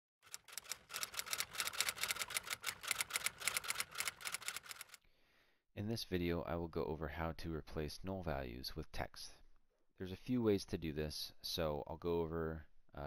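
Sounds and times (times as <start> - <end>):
rapid typing on keys: 0.2 - 5.0.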